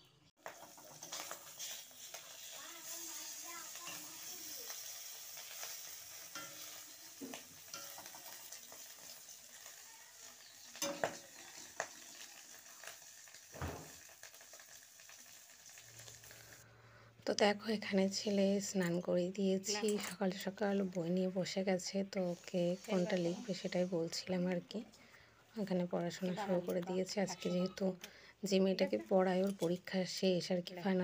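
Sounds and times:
spatula scraping a metal pan: 0:00.4 - 0:09.5
oil sizzling in a pan: 0:00.4 - 0:16.7, 0:17.6 - 0:24.8.

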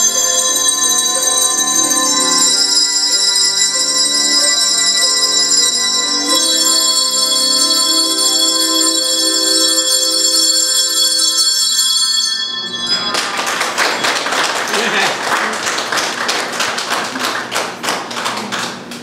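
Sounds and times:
handbell choir chord ringing: 0:00.0 - 0:14.7
applause: 0:13.1 - 0:19.0.

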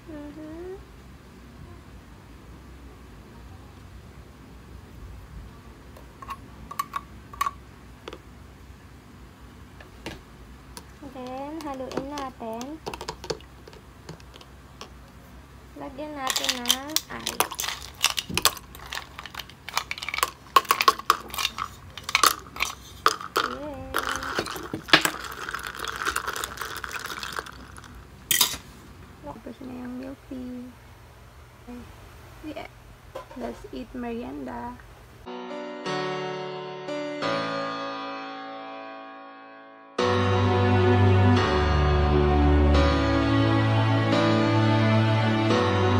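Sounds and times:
spoon stirring ice: 0:10.8 - 0:15.0, 0:16.2 - 0:28.6
ice cubes dropping into cup: 0:11.2 - 0:15.0, 0:16.2 - 0:28.6
metal utensil clicking on plastic: 0:16.2 - 0:27.5.

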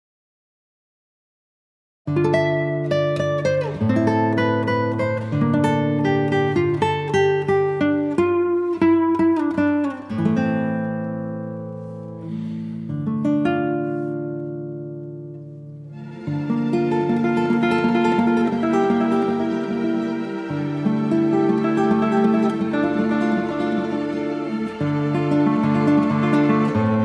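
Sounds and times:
acoustic guitar music: 0:02.1 - 0:27.0.

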